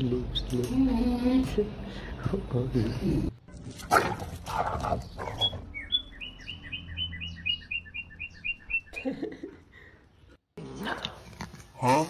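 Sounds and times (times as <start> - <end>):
bird chirping rapidly: 5.0 - 9.0.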